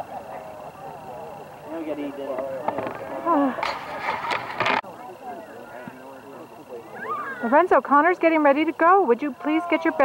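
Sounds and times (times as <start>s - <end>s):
faint distant voices: 0.0s - 10.0s
loud close speech: 0.0s - 10.0s.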